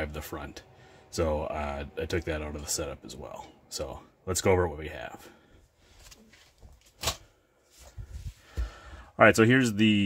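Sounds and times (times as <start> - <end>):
soft low thumps and bumps: 7.8 - 8.9.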